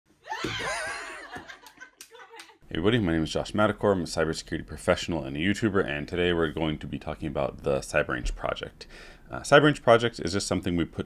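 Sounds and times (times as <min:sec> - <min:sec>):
person laughing high-pitched: 0:00.3 - 0:02.6.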